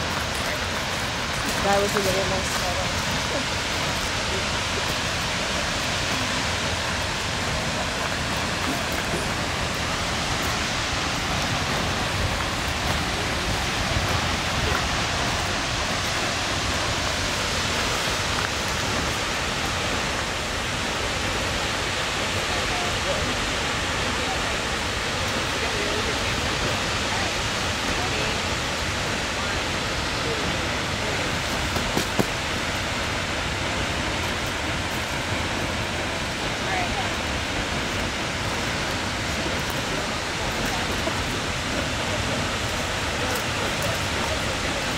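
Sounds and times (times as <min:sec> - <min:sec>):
waterfall rushing into pool: 0:00.0 - 0:44.9.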